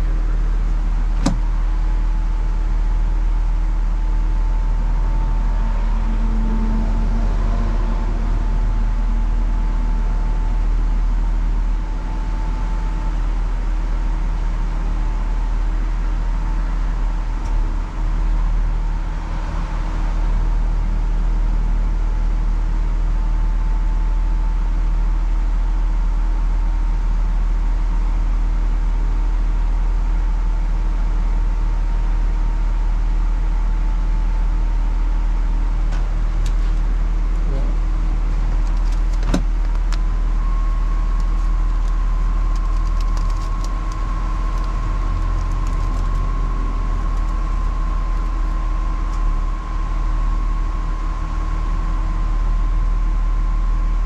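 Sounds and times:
car engine idling: 0:00.0 - 0:54.0
faint steady whine: 0:00.0 - 0:54.0.

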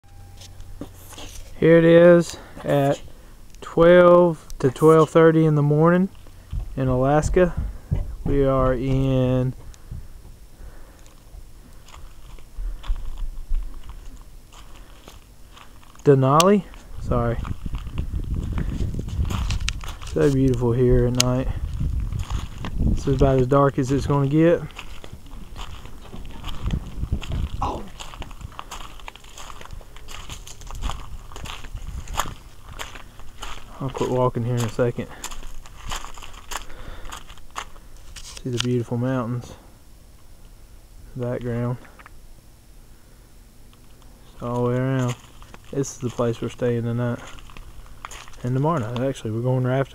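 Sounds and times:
footsteps crunching on gravel: 0:00.3 - 0:03.3, 0:04.1 - 0:39.6, 0:43.8 - 0:49.9
camera handling rumble: 0:16.7 - 0:23.4, 0:24.7 - 0:33.6.

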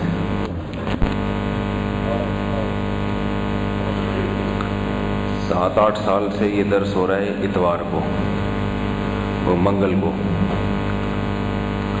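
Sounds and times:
electrical mains hum: 0:00.0 - 0:12.0
click: 0:00.4 - 0:01.2, 0:04.6 - 0:04.8, 0:10.8 - 0:11.0.

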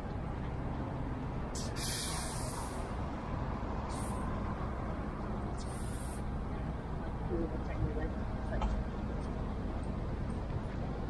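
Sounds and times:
street traffic rumble: 0:00.0 - 0:11.0
air brakes hissing: 0:01.6 - 0:03.0, 0:03.9 - 0:04.3, 0:05.6 - 0:06.3.

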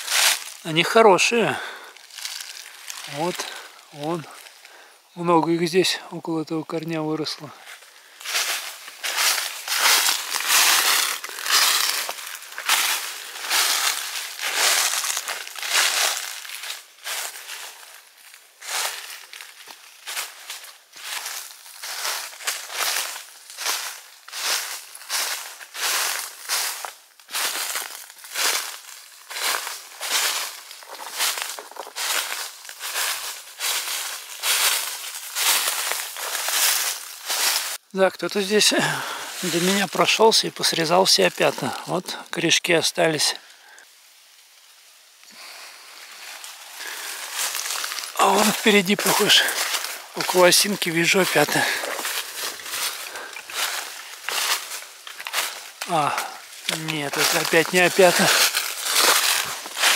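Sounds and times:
footsteps crunching dry leaves: 0:00.0 - 0:05.8, 0:06.5 - 0:59.9.

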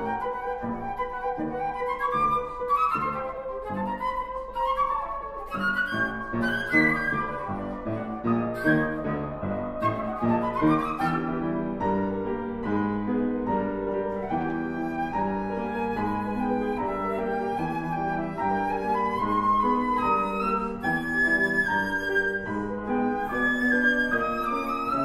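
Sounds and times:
flute runs: 0:00.0 - 0:25.0
piano chords: 0:00.0 - 0:25.0.

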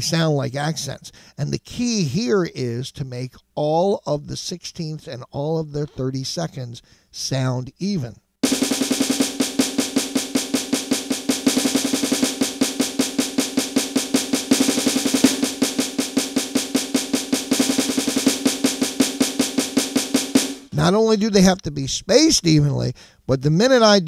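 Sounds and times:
electronic snare drum rolls: 0:08.4 - 0:21.0.

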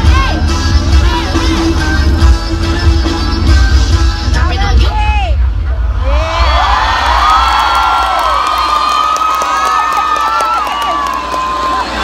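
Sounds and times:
children cheering and shouting: 0:06.0 - 0:12.0.

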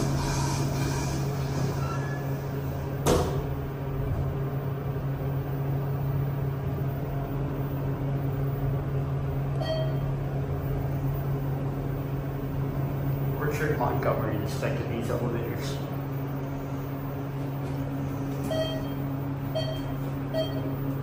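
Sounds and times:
elevator and pump humming: 0:00.0 - 0:21.0
elevator thump: 0:03.0 - 0:03.6.

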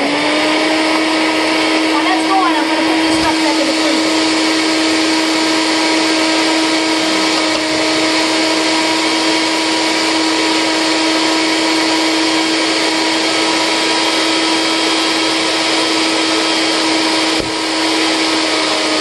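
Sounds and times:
blender motor whining: 0:00.0 - 0:19.0.

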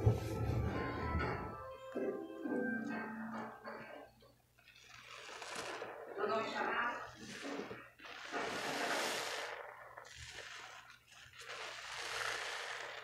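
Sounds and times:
sponge squelching in soapy water: 0:07.1 - 0:12.1.

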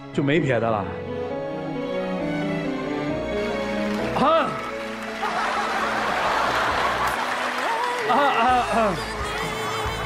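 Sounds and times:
soft romantic background music: 0:00.0 - 0:10.0
audience applauding and cheering: 0:03.4 - 0:10.0.

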